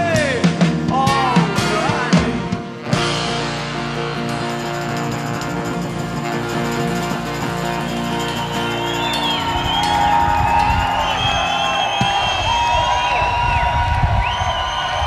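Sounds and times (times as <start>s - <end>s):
live band closing chord: 0.0s - 12.3s
crowd cheering: 3.3s - 15.0s
crowd whistling: 4.7s - 15.0s
crowd clapping: 5.0s - 15.0s.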